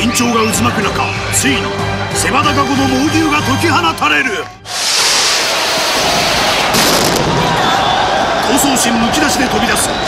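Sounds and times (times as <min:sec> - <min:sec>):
signal rocket blast and hiss: 0:04.7 - 0:07.8.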